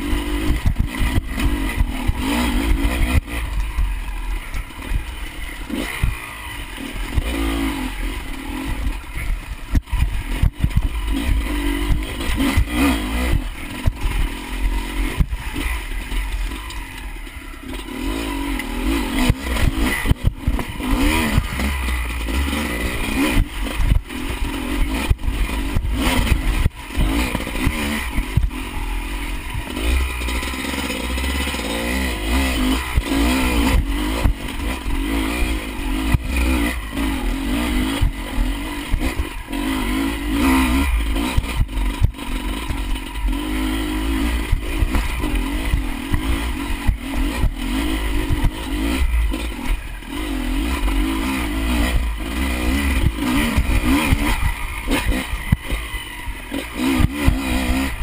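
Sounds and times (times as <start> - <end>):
motorcycle engine revving: 0.0 - 58.0
bike knocks and rattles: 8.6 - 14.4, 18.9 - 28.7, 44.2 - 58.0.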